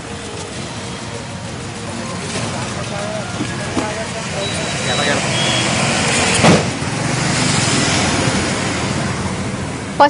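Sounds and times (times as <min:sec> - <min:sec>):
steady background noise: 0:00.0 - 0:10.0
truck engine driving past: 0:00.1 - 0:10.0
loud bang: 0:05.7 - 0:06.9.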